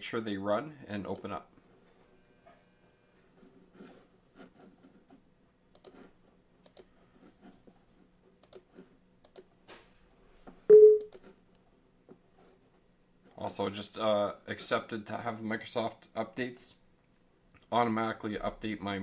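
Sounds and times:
computer mouse clicks: 0:05.7 - 0:06.9, 0:08.4 - 0:09.5.

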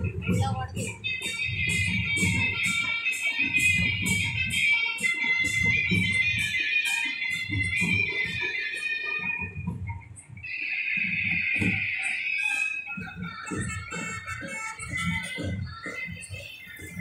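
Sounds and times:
steady drumbeat: 0:00.0 - 0:10.4, 0:11.0 - 0:17.0.

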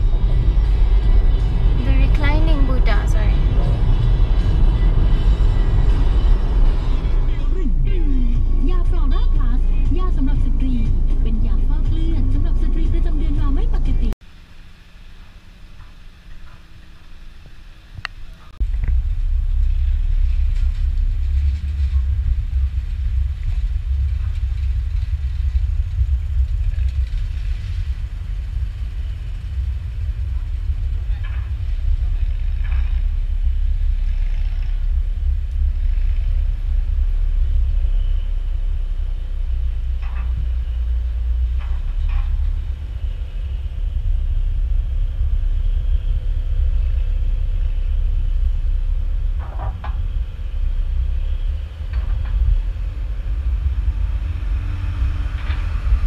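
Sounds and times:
wind buffeting microphone: 0:17.4 - 0:56.0.

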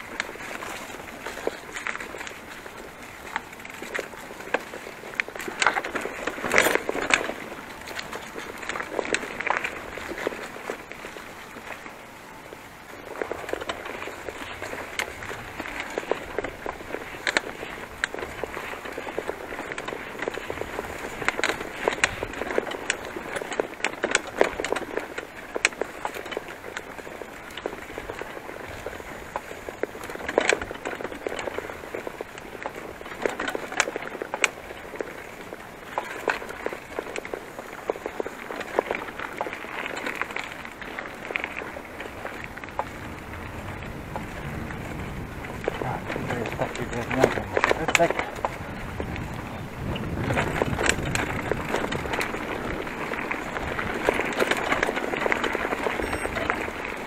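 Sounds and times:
bicycle tyres rustling over grass: 0:00.0 - 0:57.0
bike rattles and clicks: 0:00.0 - 0:57.0.

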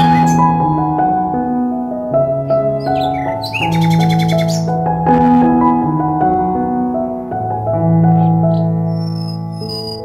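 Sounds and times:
bird chirps: 0:00.0 - 0:00.5, 0:02.8 - 0:04.8, 0:08.2 - 0:10.0
fast bird trill: 0:00.0 - 0:00.5, 0:02.8 - 0:04.7, 0:08.5 - 0:10.0
background music with held notes: 0:00.0 - 0:10.0.

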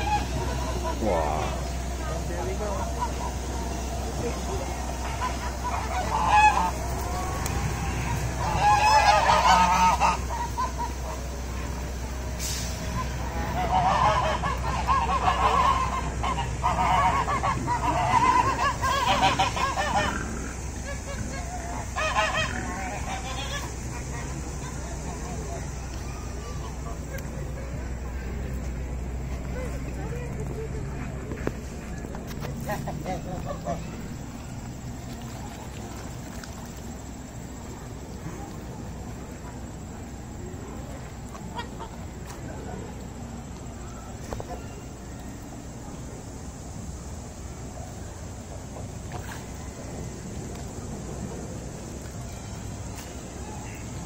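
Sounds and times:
geese honking: 0:00.0 - 0:12.2, 0:12.8 - 0:37.8.

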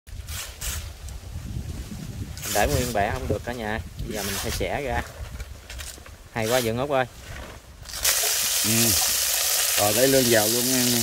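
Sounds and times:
wind buffeting microphone: 0:00.1 - 0:08.5
palm leaves rustling: 0:00.1 - 0:11.0.

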